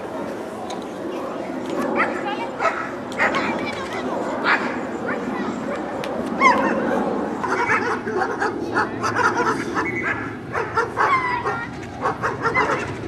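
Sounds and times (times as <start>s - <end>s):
murmur of voices: 0.0s - 13.0s
dogs yipping and barking: 2.0s - 3.5s, 4.5s - 13.0s.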